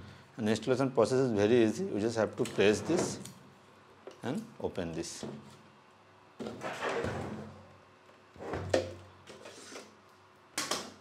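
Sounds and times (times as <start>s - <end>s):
drive tray sliding scrape: 6.6s - 7.5s.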